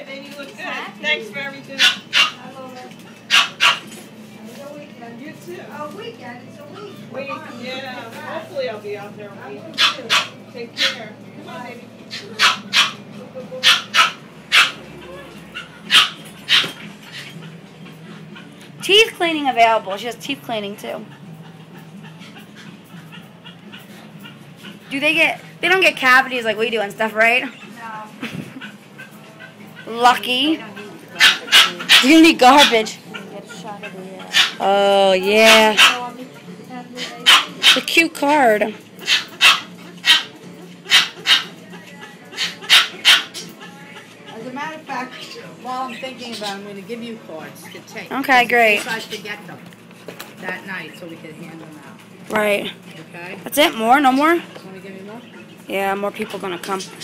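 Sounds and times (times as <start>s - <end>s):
dog barking: 1.8s - 2.4s, 3.3s - 4.0s, 9.8s - 11.0s, 12.1s - 13.0s, 13.6s - 14.9s, 15.5s - 17.4s, 31.2s - 34.6s, 35.4s - 36.2s, 37.0s - 38.0s, 39.0s - 41.6s, 42.3s - 43.5s.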